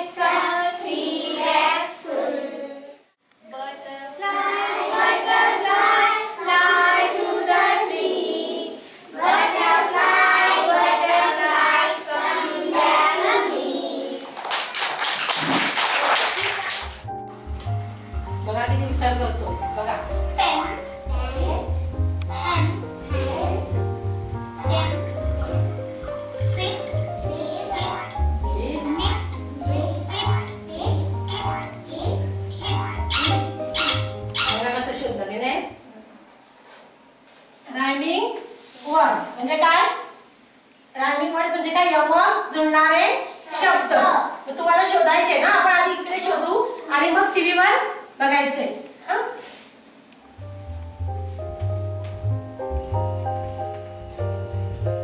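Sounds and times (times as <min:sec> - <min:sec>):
children singing in unison: 0:04.2 - 0:14.2.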